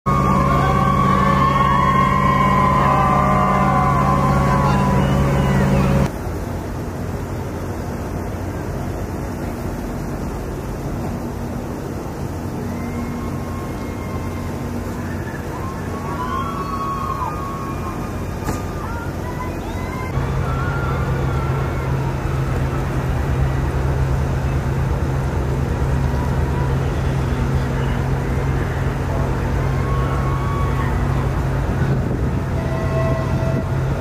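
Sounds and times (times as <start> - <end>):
ship engines droning: 0.0 - 34.0.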